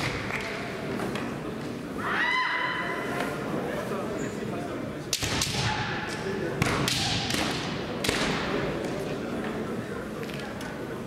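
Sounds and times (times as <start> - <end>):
echoing crowd murmur: 0.0 - 11.0
bamboo sword strikes cracking: 5.1 - 5.8.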